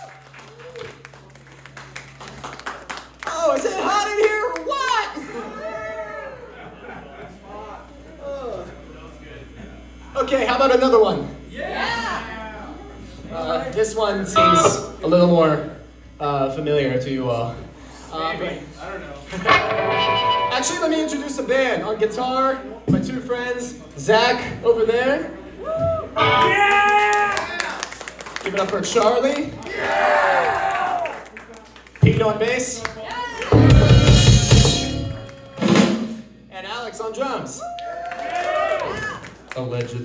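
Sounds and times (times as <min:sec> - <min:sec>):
audience clapping: 0:00.0 - 0:05.2, 0:26.3 - 0:35.9, 0:37.8 - 0:40.0
electric guitar ringing note: 0:14.3 - 0:15.0, 0:19.3 - 0:21.5.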